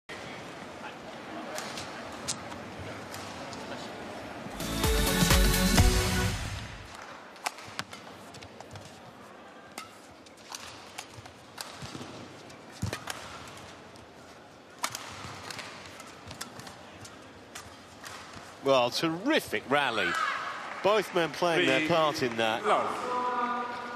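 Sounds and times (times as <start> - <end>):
arena hall hum: 0.1 - 23.9
badminton rackets hitting shuttlecock: 7.0 - 8.9, 9.7 - 13.8, 14.8 - 18.6.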